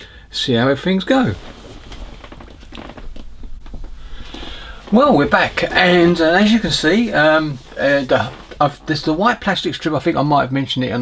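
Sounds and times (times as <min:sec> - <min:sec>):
rustling: 0:01.0 - 0:09.5
low hum: 0:01.3 - 0:09.2.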